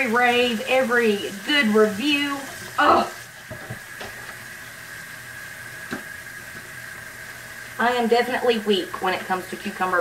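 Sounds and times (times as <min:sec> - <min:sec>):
tap running into steel sink: 0:03.5 - 0:04.4, 0:05.9 - 0:06.7.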